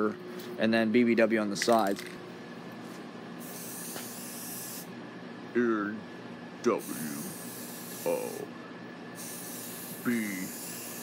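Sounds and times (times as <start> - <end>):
spray paint can hissing: 3.4 - 4.9, 6.9 - 8.4, 9.2 - 11.0.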